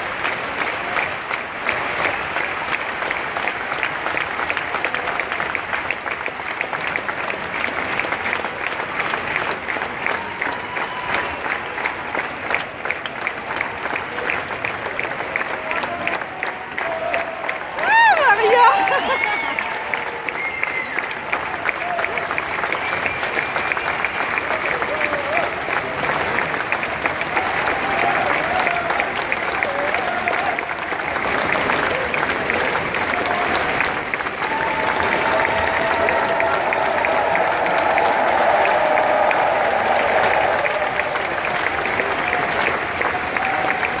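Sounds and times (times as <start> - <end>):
audience applauding: 0.0 - 44.0
voices cheering: 9.8 - 11.9, 15.3 - 26.3, 27.0 - 44.0.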